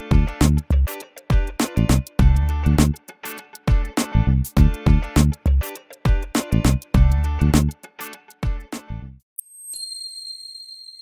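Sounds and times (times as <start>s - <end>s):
outro music: 0.0s - 8.9s
bright high-pitched chime: 9.4s - 11.0s.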